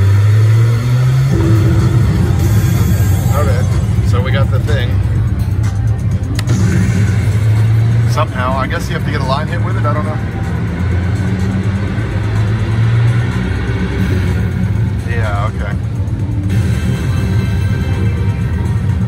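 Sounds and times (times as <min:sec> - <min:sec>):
slot machine music: 0:01.2 - 0:12.1, 0:14.0 - 0:19.0
steady low hum: 0:01.3 - 0:07.9.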